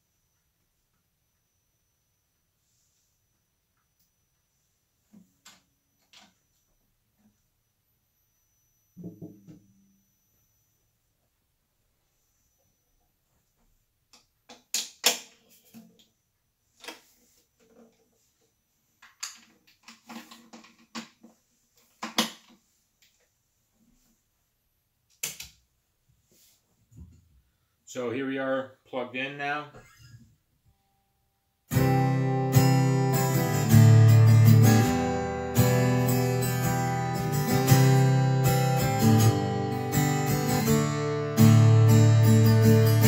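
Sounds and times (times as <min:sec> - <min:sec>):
guitar handling clicks and knocks: 0:19.0 - 0:22.6.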